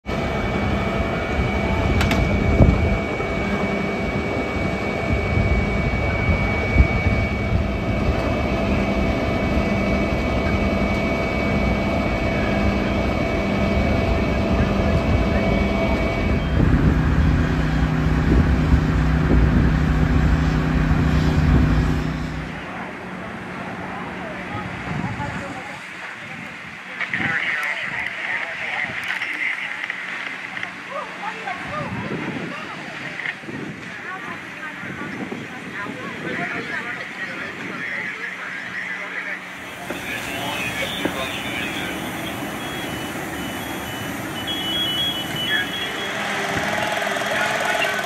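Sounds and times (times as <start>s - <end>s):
fire engine droning: 0.0s - 48.0s
high whine: 0.0s - 48.0s.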